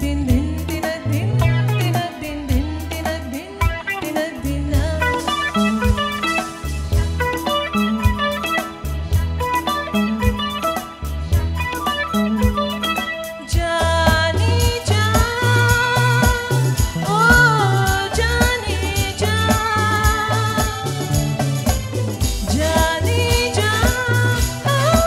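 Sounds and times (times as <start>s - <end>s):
woman singing: 0.0s - 8.6s, 12.4s - 25.0s
live band playing: 0.0s - 25.0s.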